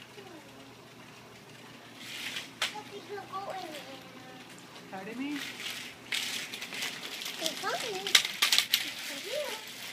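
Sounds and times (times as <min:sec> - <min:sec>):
sharp clicks and rattles: 0:02.2 - 0:09.9.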